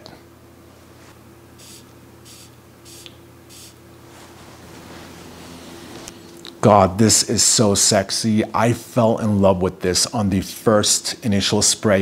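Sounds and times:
perfume spray atomizer hissing: 1.6 - 3.8.

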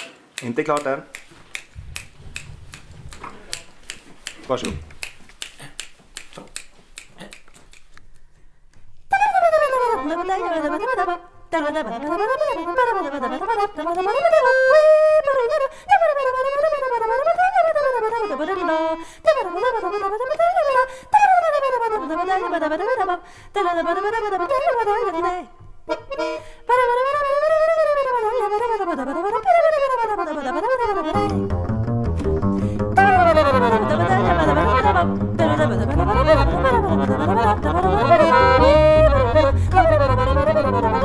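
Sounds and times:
fingers snapping a beat: 0.0 - 8.9, 30.7 - 41.0
woman singing wordless line: 9.4 - 14.6, 17.8 - 25.6, 26.7 - 31.4, 33.0 - 41.0.

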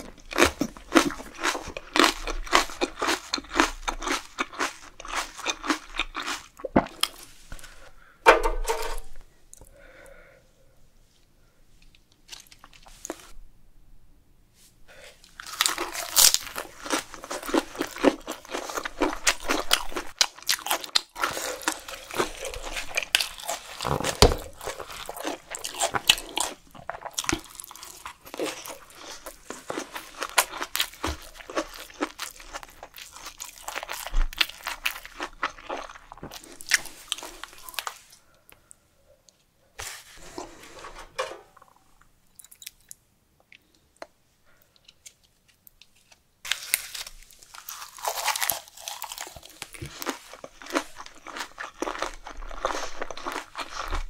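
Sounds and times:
wet crisp chewing: 46.5 - 54.0.

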